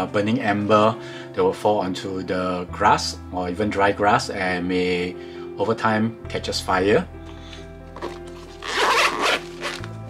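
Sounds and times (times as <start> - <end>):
background music: 0.0 - 10.0
zipper pulled open: 8.0 - 10.0.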